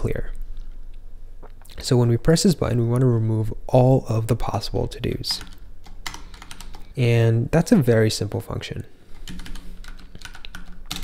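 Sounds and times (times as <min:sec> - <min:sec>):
computer keyboard typing: 0:05.3 - 0:06.9, 0:09.2 - 0:11.0.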